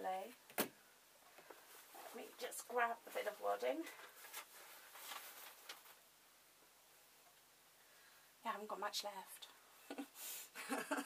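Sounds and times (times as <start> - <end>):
wadding rustling: 1.4 - 6.1.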